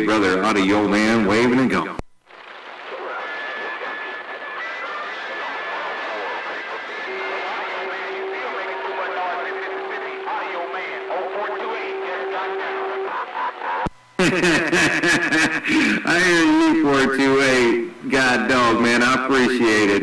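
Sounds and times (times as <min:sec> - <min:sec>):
faint garbled radio voices: 0:00.0 - 0:14.2, 0:15.4 - 0:20.0
radio static hiss: 0:00.0 - 0:20.0
radio carrier whistles: 0:02.3 - 0:13.9.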